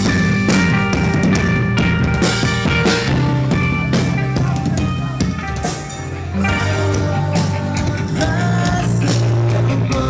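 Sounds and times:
drum and cymbal hits: 0:00.0 - 0:10.0
live band playing loud: 0:00.0 - 0:10.0
sustained guitar chords: 0:00.0 - 0:10.0.

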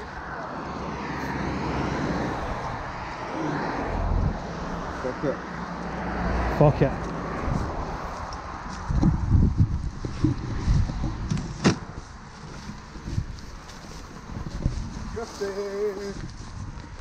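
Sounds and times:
car passing: 0:00.0 - 0:16.8
thuds: 0:10.1 - 0:12.0
footsteps rustling through dry leaves: 0:11.9 - 0:17.0.

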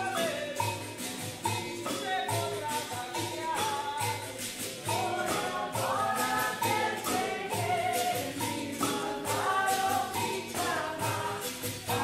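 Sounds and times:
chorus of voices singing: 0:00.0 - 0:12.0
steady percussion beat: 0:00.0 - 0:12.0.

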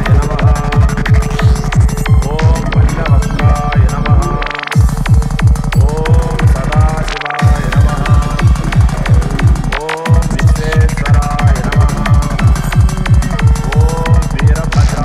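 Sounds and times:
pounding kick drum: 0:00.0 - 0:15.0
rolling bass: 0:00.0 - 0:15.0.

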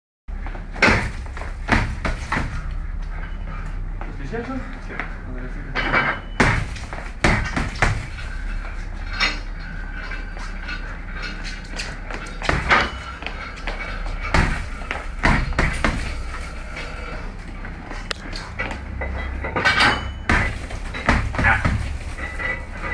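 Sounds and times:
boxing gloves punching bag: 0:00.3 - 0:02.7, 0:06.4 - 0:09.0, 0:11.6 - 0:16.6, 0:20.3 - 0:22.9.

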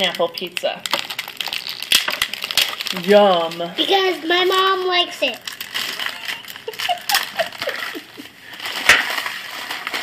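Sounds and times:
plastic wrap crinkling: 0:00.0 - 0:10.0.

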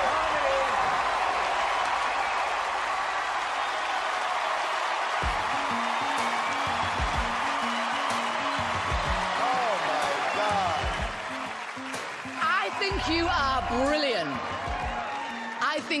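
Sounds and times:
audience cheering and applauding: 0:00.0 - 0:16.0
music with steady beat and bass: 0:05.2 - 0:12.3, 0:12.9 - 0:15.1.

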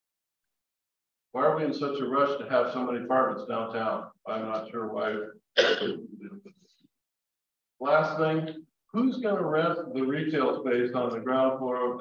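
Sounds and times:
person coughing and clearing throat: 0:05.6 - 0:06.3.

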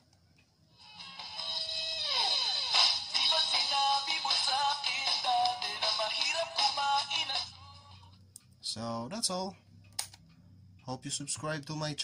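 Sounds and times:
song from small speaker: 0:00.8 - 0:08.2.

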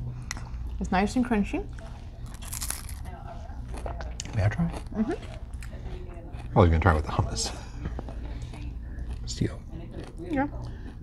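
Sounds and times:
steady low hum: 0:00.0 - 0:11.0
crisp crunch of biting food: 0:02.2 - 0:03.1.

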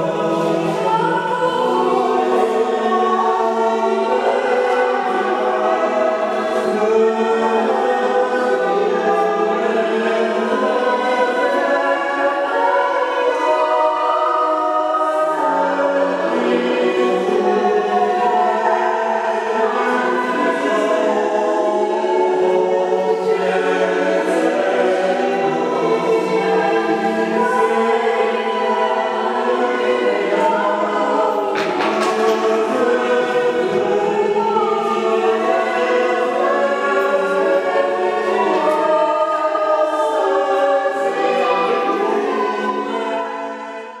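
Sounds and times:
choir singing held notes: 0:00.0 - 0:44.0.

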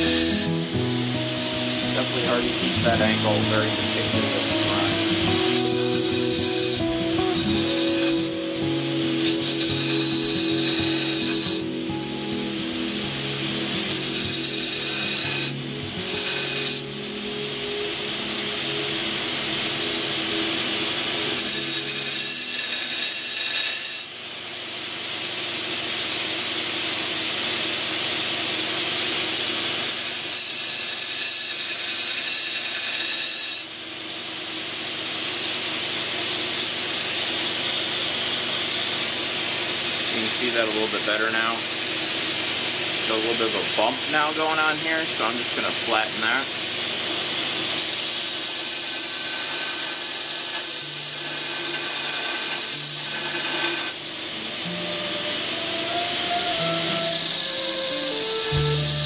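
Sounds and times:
belt grinder grinding metal: 0:00.0 - 0:12.1, 0:13.6 - 0:16.9, 0:21.2 - 0:24.2, 0:29.6 - 0:33.8, 0:36.6 - 0:59.0
man talking: 0:01.8 - 0:05.2, 0:40.1 - 0:41.7, 0:43.0 - 0:46.5.

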